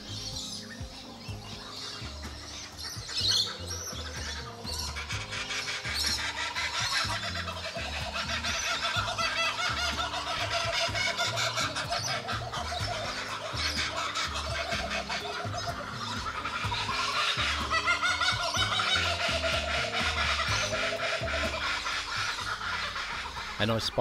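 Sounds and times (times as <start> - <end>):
background music with low beat: 0.0 - 24.0
kookaburras laughing: 0.0 - 24.0.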